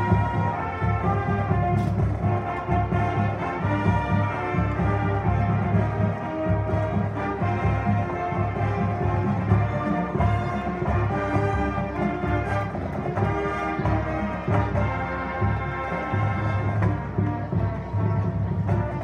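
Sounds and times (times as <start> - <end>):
brass chords: 0.0 - 17.9.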